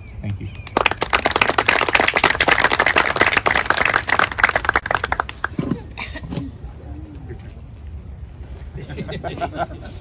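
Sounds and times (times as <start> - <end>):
audience applauding: 0.7 - 5.5.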